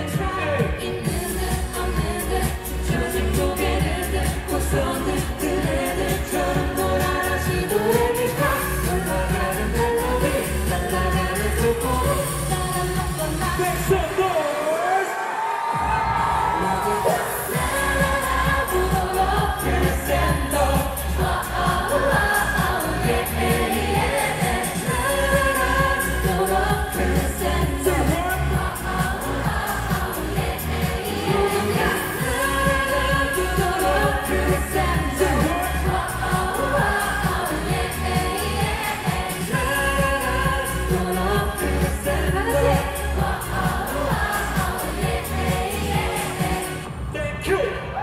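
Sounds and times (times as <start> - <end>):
woman singing into a microphone: 0.0 - 14.1, 16.5 - 46.8
backing track with heavy bass beat: 0.0 - 14.8, 15.7 - 47.0.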